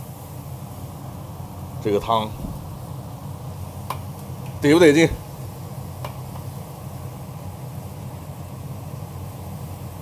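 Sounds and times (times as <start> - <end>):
stew boiling in a pot: 0.0 - 10.0.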